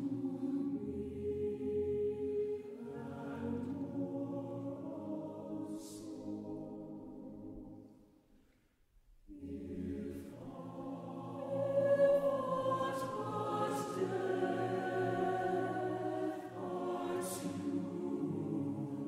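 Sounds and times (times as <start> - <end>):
choir singing held chords: 0.0 - 8.1, 9.3 - 19.0.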